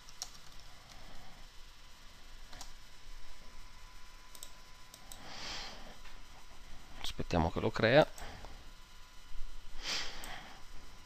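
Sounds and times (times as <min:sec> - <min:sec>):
computer mouse clicks: 0:00.0 - 0:01.0, 0:02.5 - 0:02.8, 0:04.3 - 0:05.2.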